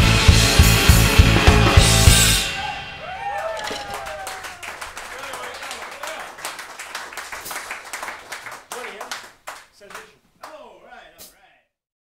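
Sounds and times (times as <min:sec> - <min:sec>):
audience applauding: 0:03.0 - 0:10.6.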